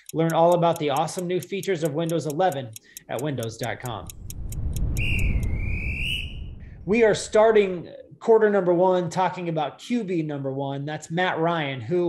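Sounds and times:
clock ticking: 0.0s - 5.6s
low rumble: 3.9s - 7.9s
long whistle blast: 4.8s - 6.8s.

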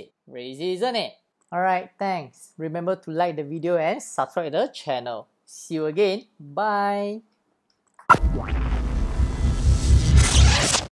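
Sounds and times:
pulsing bass: 8.1s - 10.4s
synthesized whooshes: 8.1s - 10.9s.

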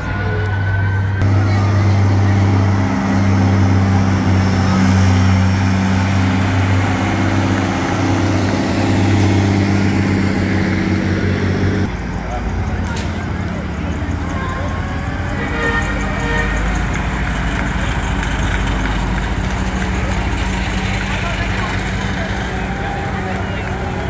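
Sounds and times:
diesel truck engine droning: 0.0s - 24.0s.

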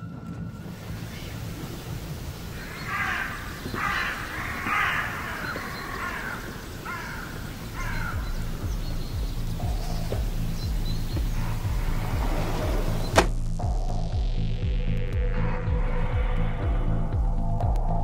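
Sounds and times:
low background music: 0.0s - 18.0s
crow cawing: 1.1s - 12.0s.

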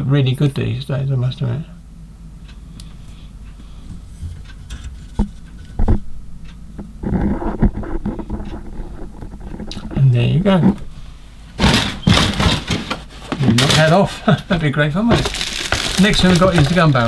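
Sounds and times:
plastic scraping rustle: 7.0s - 11.0s, 11.6s - 14.2s, 15.0s - 17.0s.

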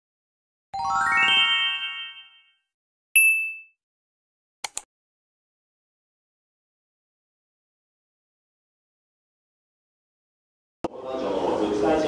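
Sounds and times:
short bright ding: 3.2s - 3.8s.

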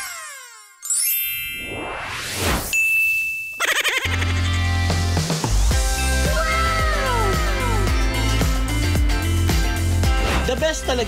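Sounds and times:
rising whoosh: 1.4s - 2.8s.

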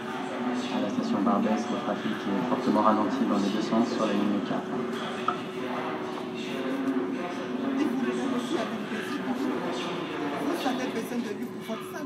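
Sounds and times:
faint passenger voices: 0.0s - 12.0s.

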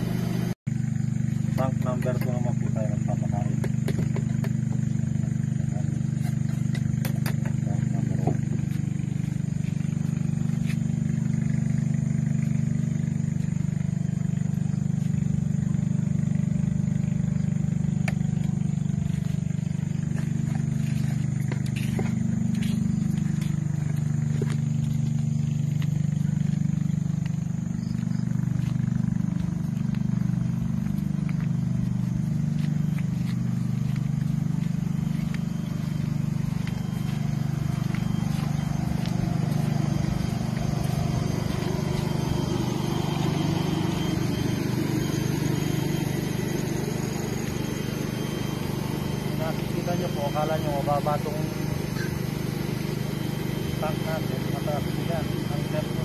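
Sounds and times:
low machine hum: 0.0s - 56.0s.

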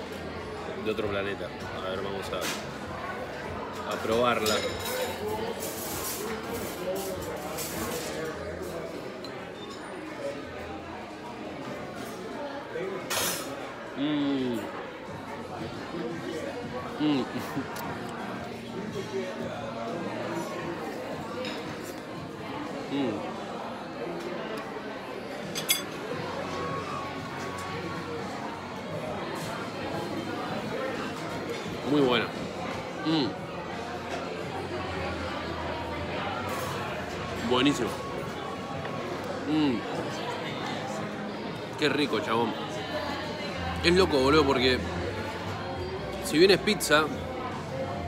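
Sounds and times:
diners chattering: 0.0s - 48.0s
tableware clinking: 3.9s - 8.4s, 25.4s - 26.0s.

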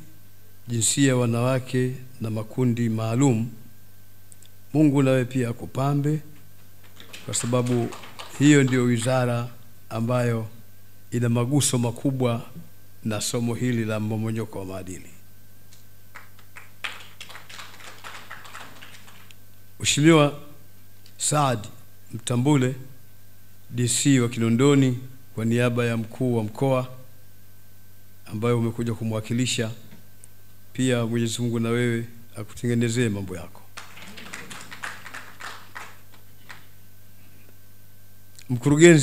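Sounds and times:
low electrical hum: 0.0s - 39.0s
audience applause: 6.8s - 8.8s, 16.1s - 19.3s, 33.8s - 36.7s.

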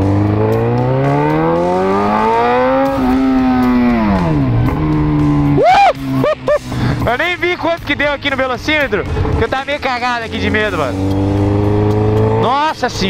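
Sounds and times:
motorcycle engine accelerating: 0.0s - 13.0s.

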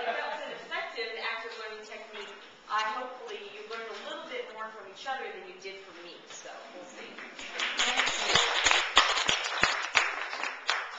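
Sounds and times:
audience applauding: 7.4s - 10.9s.

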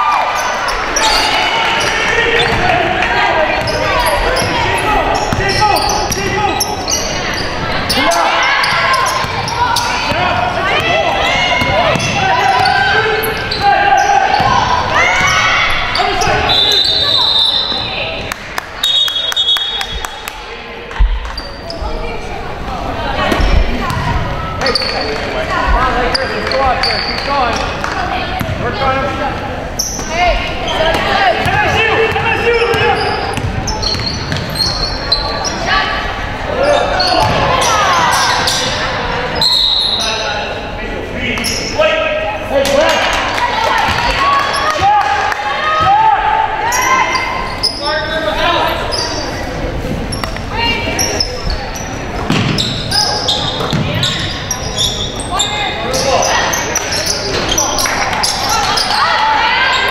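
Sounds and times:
people calling out in gymnasium: 0.0s - 59.9s.

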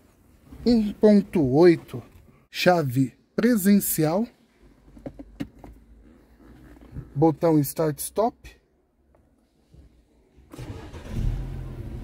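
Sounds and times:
car engine starting and idling: 10.3s - 12.0s.

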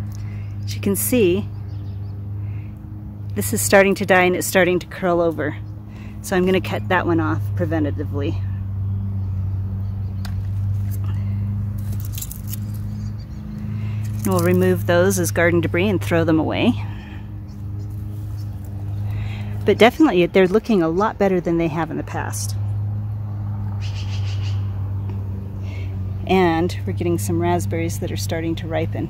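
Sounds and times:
low motor hum: 0.0s - 29.0s
hand pruners snipping: 11.8s - 16.1s.

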